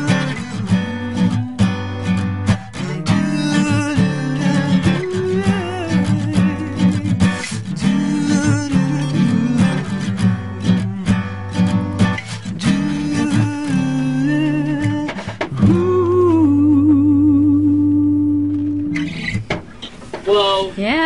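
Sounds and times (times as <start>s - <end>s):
person singing: 0.0s - 2.0s, 2.7s - 11.3s, 12.5s - 19.2s
acoustic guitar strumming: 0.0s - 20.2s.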